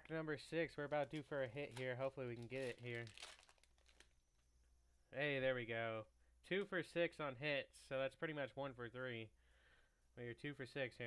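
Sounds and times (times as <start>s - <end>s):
foil wrapper tearing open: 1.7s - 4.1s.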